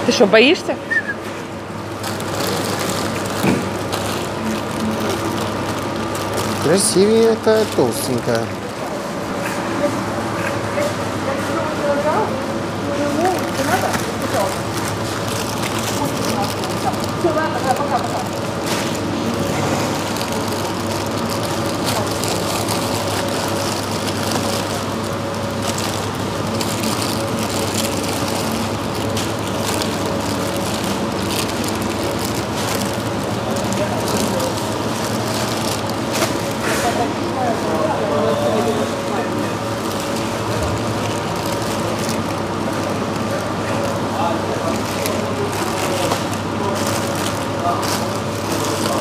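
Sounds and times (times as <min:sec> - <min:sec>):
indistinct shopper voices: 0:00.0 - 0:49.0
refrigeration hum: 0:00.0 - 0:49.0.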